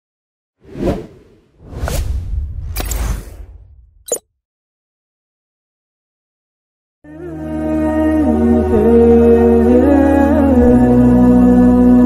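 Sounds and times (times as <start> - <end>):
whoosh sound effects: 0.6 - 4.2
low rumble: 1.6 - 4.1.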